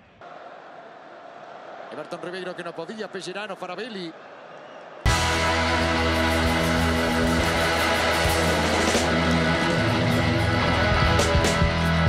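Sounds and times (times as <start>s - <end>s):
electric guitar with bass and drums: 5.1s - 12.0s.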